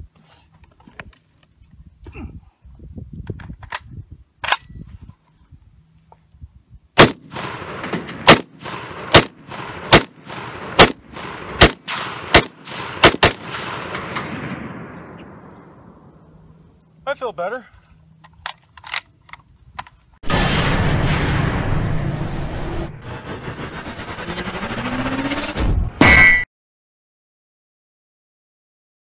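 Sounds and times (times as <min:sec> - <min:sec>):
rifle gunshots echoing: 0:07.0 - 0:15.6
rifle handling clicks: 0:18.2 - 0:20.0.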